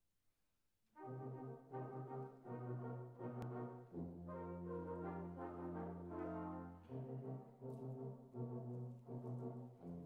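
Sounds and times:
brass band playing chords: 1.0s - 10.0s.

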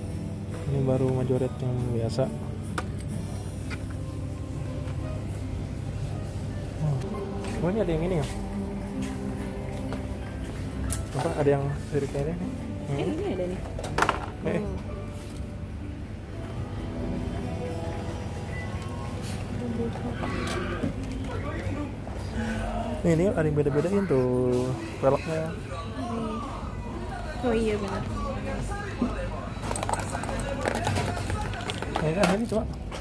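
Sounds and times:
faint background music: 0.0s - 33.0s.

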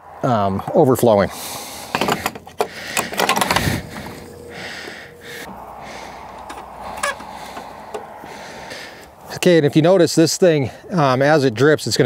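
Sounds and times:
hose fittings clicking and rattling: 1.9s - 4.4s, 6.4s - 8.1s.

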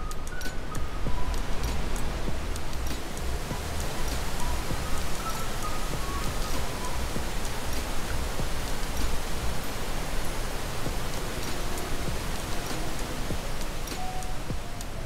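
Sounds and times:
water rushing over rocks: 0.0s - 15.0s.

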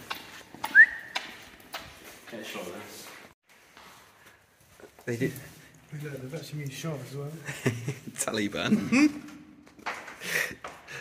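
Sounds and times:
footsteps on concrete: 0.0s - 7.1s.

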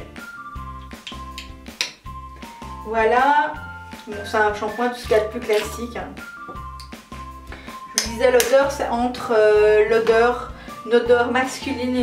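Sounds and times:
background music with beat: 0.0s - 8.9s.

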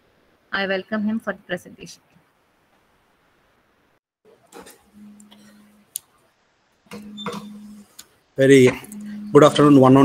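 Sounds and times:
faint low hum: 4.8s - 10.0s.

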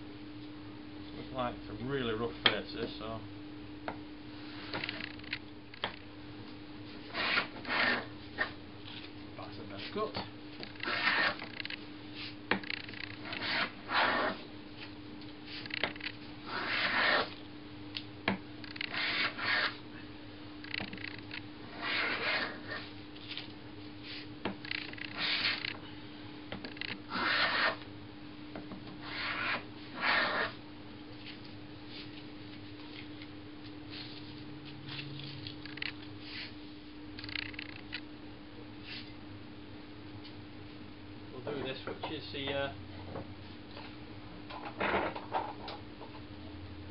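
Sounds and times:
steady low hum: 0.0s - 46.9s
jack plane cutting shavings: 18.8s - 19.8s, 21.7s - 22.8s.

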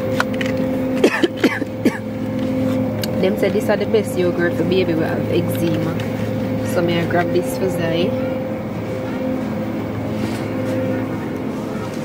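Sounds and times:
refrigerated display case hum: 0.0s - 12.0s.

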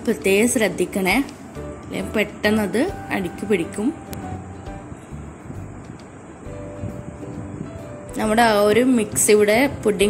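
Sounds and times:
low steady rumble: 0.0s - 10.0s
soft background music: 0.0s - 10.0s.

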